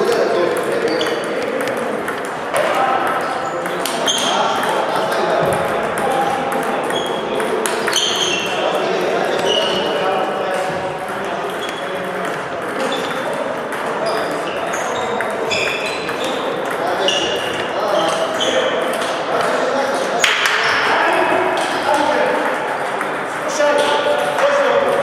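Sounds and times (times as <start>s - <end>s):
table tennis balls clicking: 0.0s - 19.7s, 21.5s - 25.0s.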